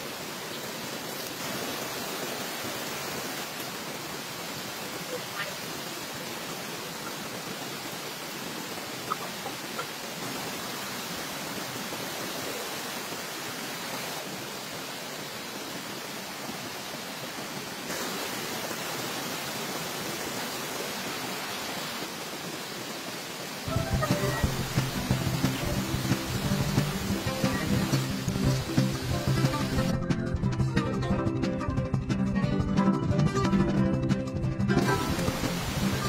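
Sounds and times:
river and waterfall rushing: 0.0 - 30.0, 34.7 - 36.0.

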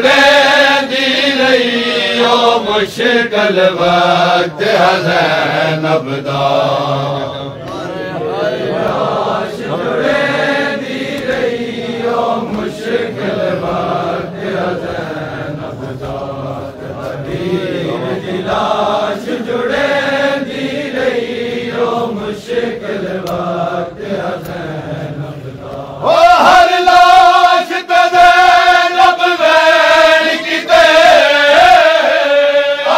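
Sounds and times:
men chanting a lament: 0.0 - 32.9.

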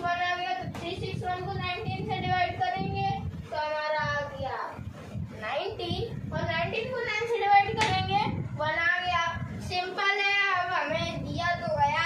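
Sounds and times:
boy chanting sing-song: 0.0 - 12.0.

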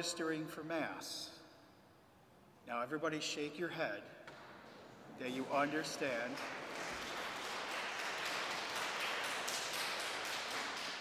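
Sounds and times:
congregation applauding: 4.7 - 11.0.

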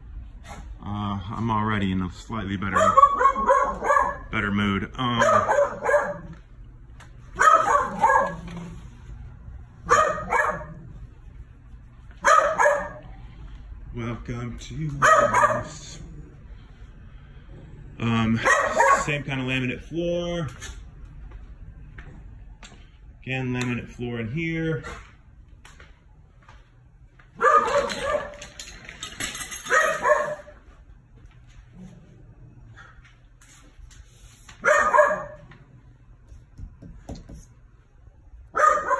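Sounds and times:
small dogs barking: 2.7 - 4.3, 5.1 - 6.4, 7.3 - 8.8, 9.8 - 11.0, 12.2 - 13.2, 15.0 - 15.9, 18.4 - 19.2, 27.4 - 28.5, 29.7 - 30.6, 34.6 - 35.5, 38.5 - 38.9.

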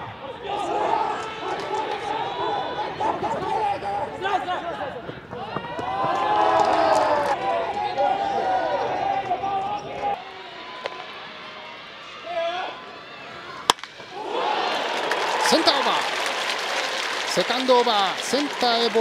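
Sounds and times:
crowd cheering: 0.0 - 19.0
crowd voices: 0.0 - 19.0
wooden bat cracking against ball: 10.8 - 11.2, 13.6 - 14.1.

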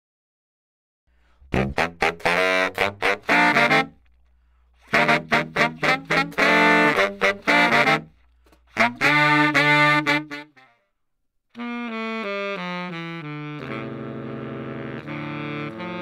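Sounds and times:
baritone saxophones in harmony: 1.4 - 4.1, 4.8 - 10.8, 11.6 - 16.0.

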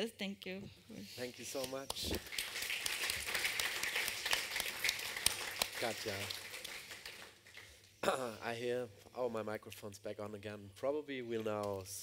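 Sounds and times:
audience applauding: 1.6 - 7.8.

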